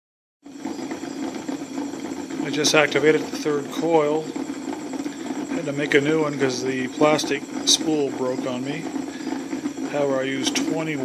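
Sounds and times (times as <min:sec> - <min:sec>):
pulse motor rapid pulsing buzz: 0:00.4 - 0:11.0.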